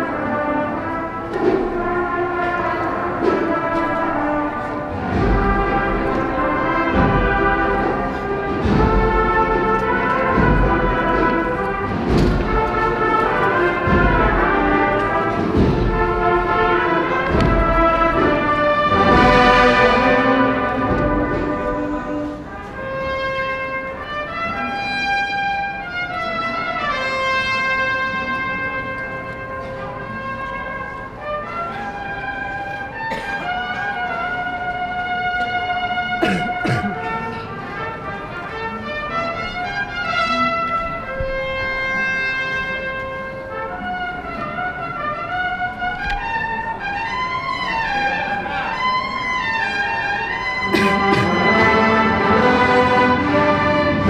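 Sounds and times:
brass band playing slow march: 0.0 - 54.0
drum beats: 0.8 - 22.9, 50.7 - 54.0.

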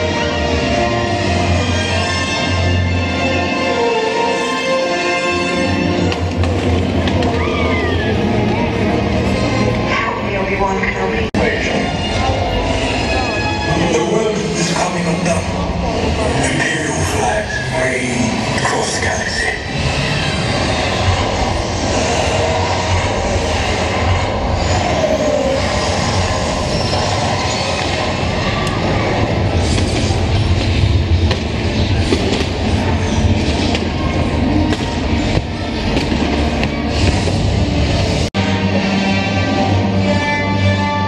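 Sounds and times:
voices over loudspeakers: 7.4 - 19.8.

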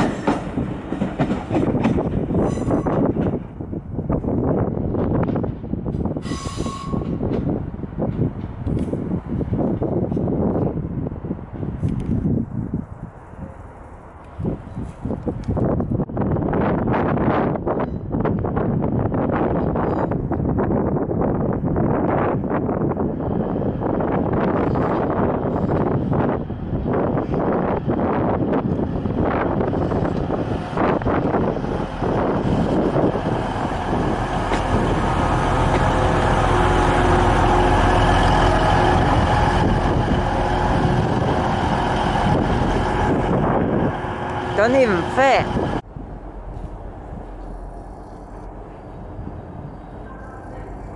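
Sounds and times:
train wheels clattering: 0.0 - 3.6, 29.6 - 43.2
diesel engine drone: 27.8 - 50.9.

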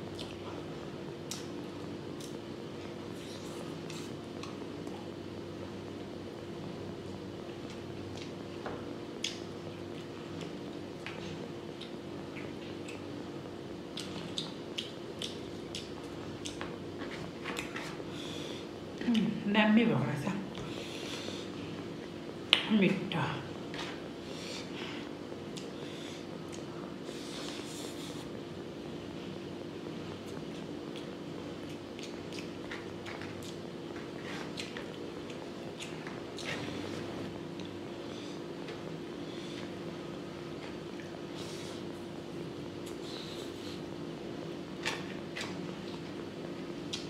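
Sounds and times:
steady low hum: 0.0 - 47.0
wet chewing: 13.9 - 17.8, 30.3 - 36.7.

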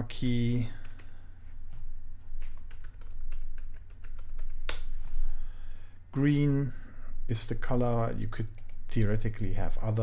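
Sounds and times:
low steady hum: 0.0 - 10.0
typing on computer keyboard: 0.8 - 1.1, 2.6 - 4.6.

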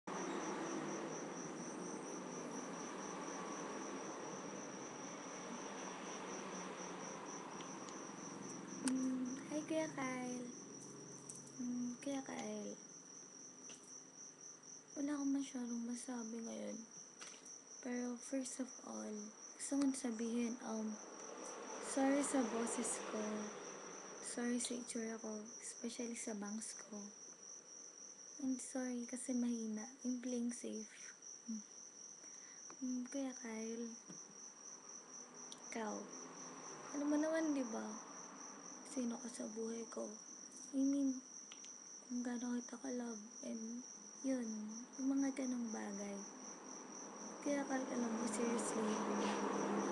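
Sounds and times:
background hiss: 0.0 - 49.9
crickets chirping: 0.0 - 49.9
woman's voice: 8.8 - 10.6, 11.6 - 12.8, 15.0 - 16.9, 17.8 - 21.0, 21.8 - 23.6, 24.2 - 27.2, 28.4 - 31.6, 32.8 - 34.0, 35.6 - 36.1, 37.0 - 38.0, 38.9 - 41.2, 42.1 - 46.3, 47.4 - 49.4.

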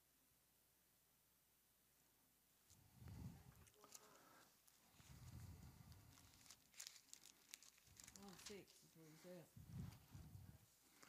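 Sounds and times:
thin pages rustling: 3.6 - 10.2.

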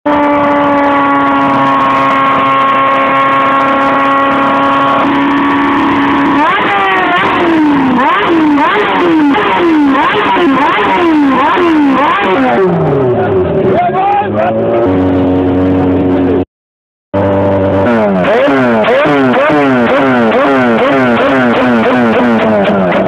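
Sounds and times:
motorcycle engine revving: 0.1 - 16.5, 17.2 - 23.0.

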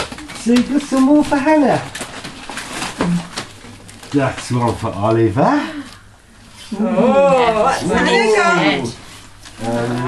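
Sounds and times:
gift wrap crinkling: 0.0 - 6.1, 8.4 - 10.0.

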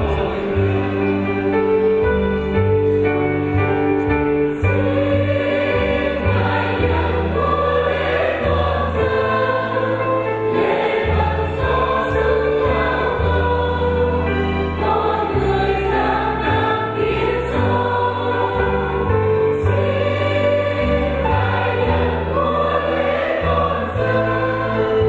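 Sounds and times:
church choir singing a hymn: 0.0 - 2.6, 4.4 - 25.0.

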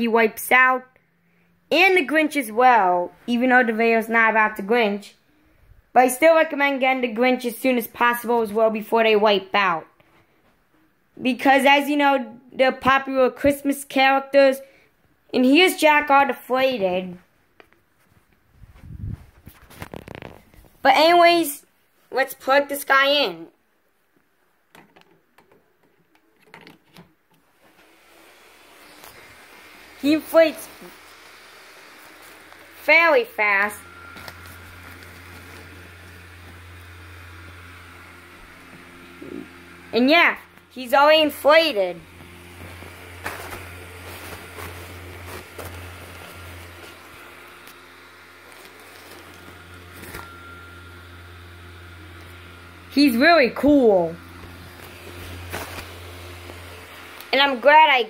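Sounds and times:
blower fan whirring: 15.3 - 23.4, 27.4 - 58.0.

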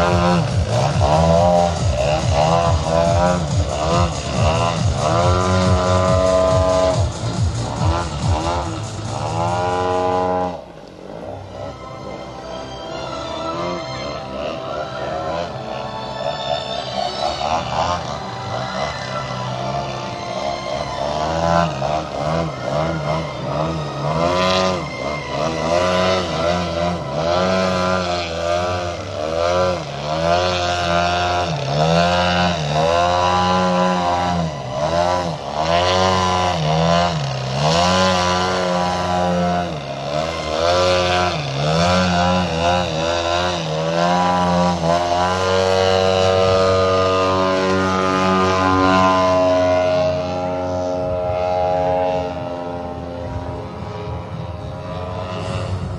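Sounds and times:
model plane engine and propeller: 0.0 - 55.9.

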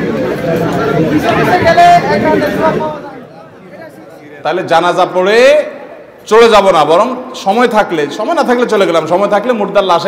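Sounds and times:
crowd chatter: 0.0 - 10.0
man talking loudly: 1.3 - 10.0.

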